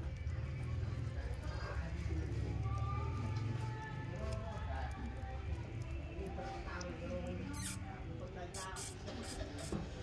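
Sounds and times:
young mongooses squeaking and chittering: 0:07.0 - 0:09.9.

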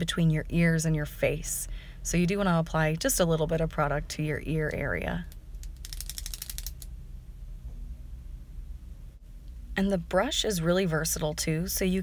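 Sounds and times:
ratchet clicks of brush dispenser: 0:05.6 - 0:06.9.

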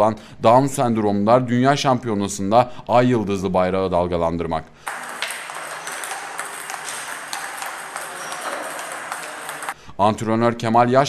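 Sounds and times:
room noise: 0:04.8 - 0:09.8
table tennis ball clicking: 0:04.9 - 0:09.8.

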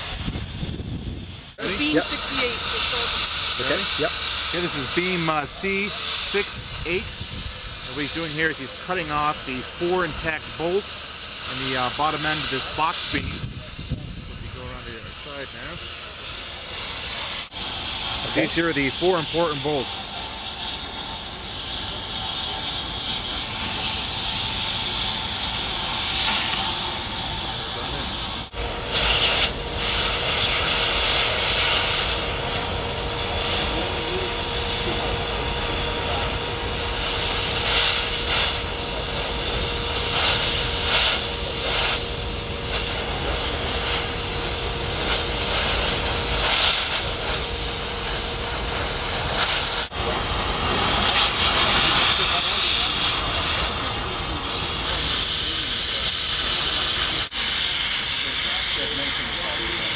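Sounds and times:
cutting torch hissing: 0:00.0 - 0:59.9.

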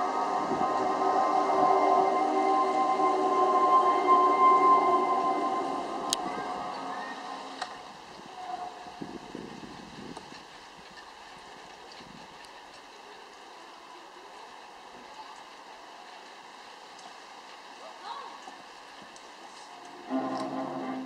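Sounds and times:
eerie droning tones: 0:00.0 - 0:09.6, 0:19.8 - 0:21.0
faint hiss: 0:00.0 - 0:21.0.

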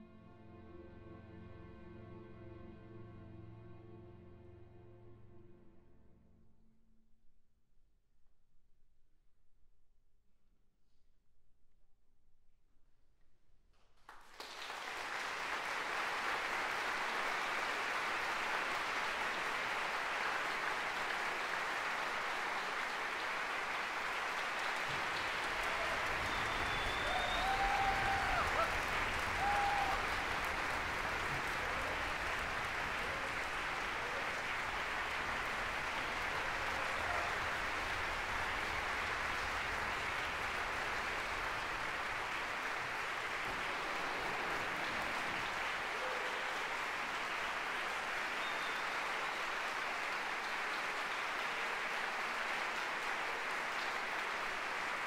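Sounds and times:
audience applauding: 0:14.1 - 0:55.0.

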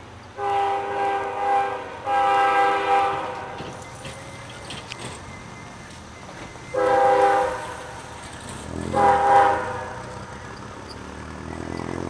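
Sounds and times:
locomotive air horn blasts: 0:00.4 - 0:03.8, 0:06.7 - 0:08.1, 0:08.8 - 0:10.1.

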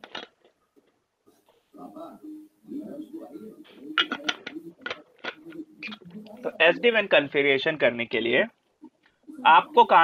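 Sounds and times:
pigeon cooing: 0:01.8 - 0:07.3, 0:08.8 - 0:10.0.

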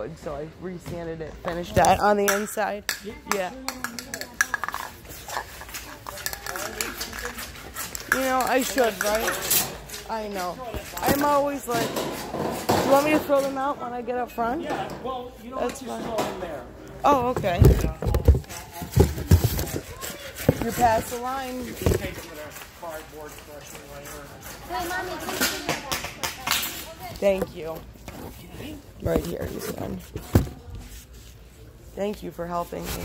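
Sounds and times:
conversation: 0:00.0 - 0:33.0.

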